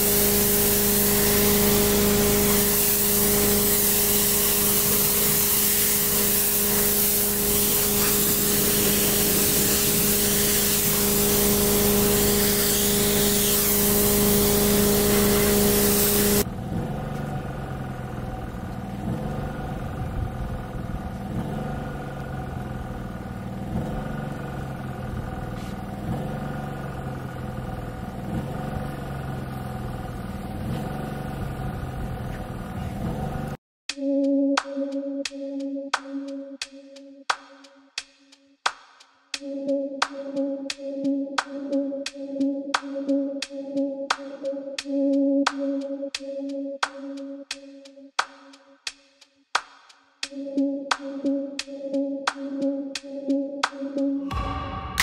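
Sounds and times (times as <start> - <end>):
pressure washer spraying water: 0.0 - 16.5
background music with bass line: 33.9 - 55.0.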